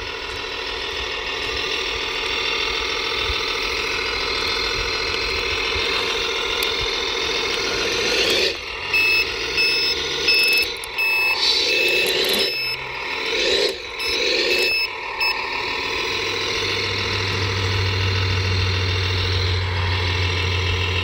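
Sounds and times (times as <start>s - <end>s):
model truck motor running: 0.0s - 21.0s
reversing beeps: 8.0s - 17.1s.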